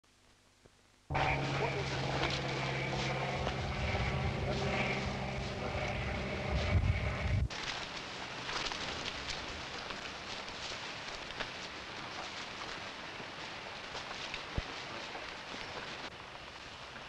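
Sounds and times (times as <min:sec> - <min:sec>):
piston plane engine droning: 0:01.1 - 0:07.5.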